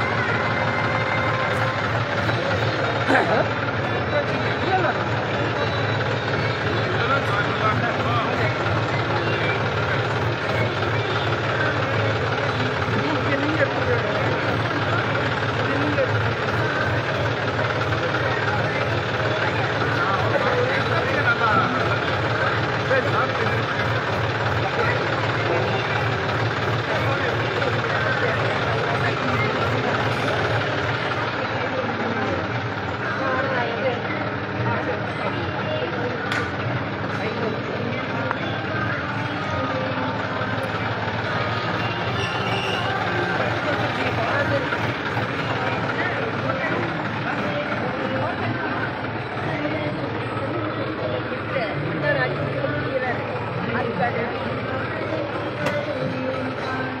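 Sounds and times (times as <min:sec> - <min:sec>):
people talking: 0:00.0 - 0:57.0
tractor engine idling: 0:00.0 - 0:57.0.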